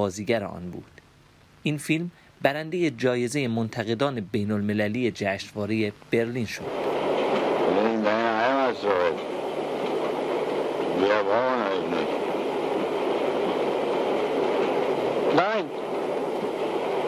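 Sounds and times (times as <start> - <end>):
train carriage rumble: 0.0 - 17.0
man speaking: 1.6 - 6.7, 7.7 - 9.2, 11.0 - 12.1, 15.3 - 15.7.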